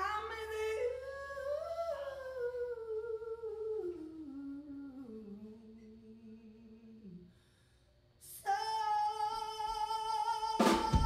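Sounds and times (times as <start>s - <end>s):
woman singing through a pa: 0.0s - 7.2s, 8.2s - 11.0s
low steady hum: 0.0s - 11.0s.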